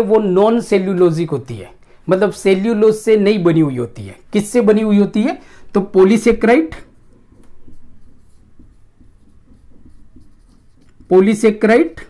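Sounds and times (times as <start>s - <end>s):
marker writing on whiteboard: 4.0s - 12.0s.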